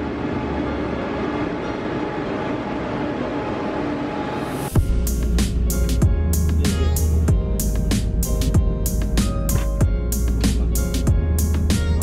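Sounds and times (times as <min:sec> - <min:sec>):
train at platform rumbling: 0:00.0 - 0:12.0.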